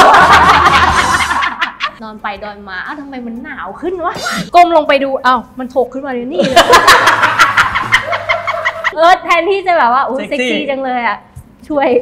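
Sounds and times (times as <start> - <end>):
women laughing hard: 0.0 - 2.0, 6.4 - 9.0.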